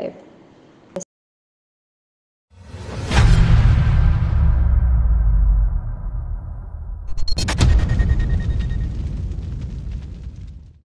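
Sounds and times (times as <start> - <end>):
low rumbling cinematic boom: 2.6 - 10.8.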